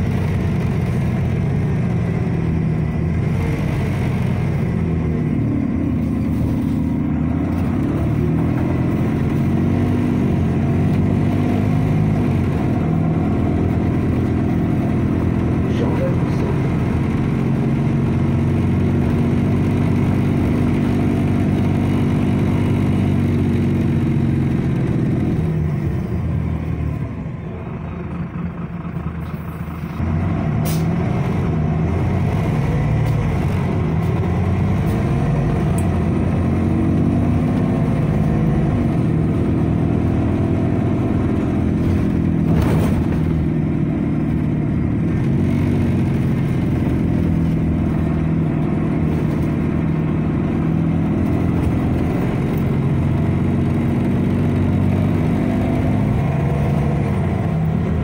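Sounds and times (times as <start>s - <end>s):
bus engine and drivetrain: 0.0s - 58.0s.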